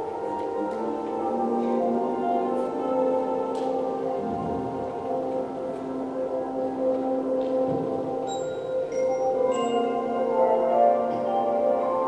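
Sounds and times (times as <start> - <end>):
brass band sustained chords: 0.0 - 12.0.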